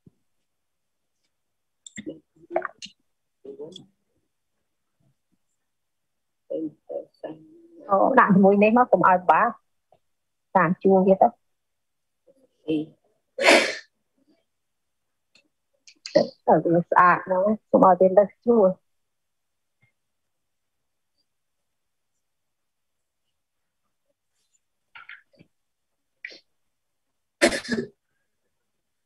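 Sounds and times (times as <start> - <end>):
forceful burst of breath: 13.4 - 13.9
person clearing throat: 27.4 - 28.0.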